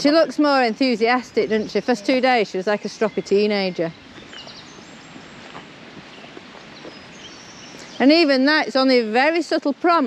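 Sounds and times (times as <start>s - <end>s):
low background hiss: 0.0s - 10.0s.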